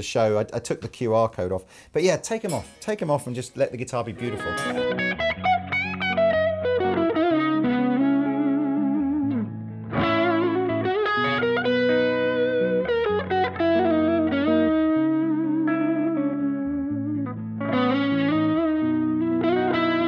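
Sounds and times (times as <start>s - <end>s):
electric guitars playing: 4.0s - 20.0s.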